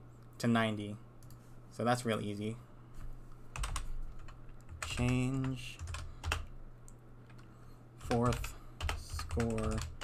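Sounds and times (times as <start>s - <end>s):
computer keyboard keystrokes: 3.5s - 10.0s.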